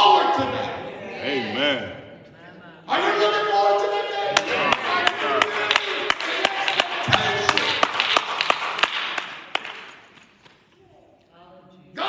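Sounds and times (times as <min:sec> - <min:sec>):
hand claps: 0:04.4 - 0:10.7.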